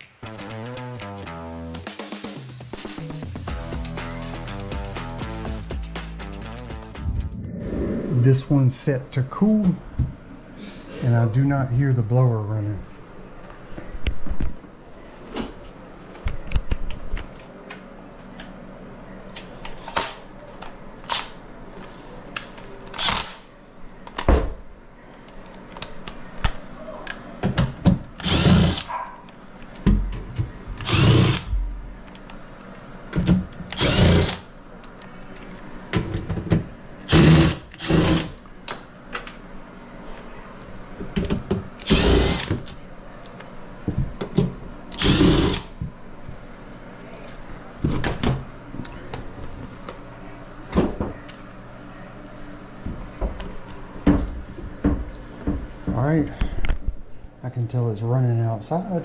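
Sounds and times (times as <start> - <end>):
impact driver running: 28.2 - 28.9, 30.8 - 31.6, 33.7 - 34.5, 37.1 - 38.4, 41.8 - 42.7, 44.9 - 45.7.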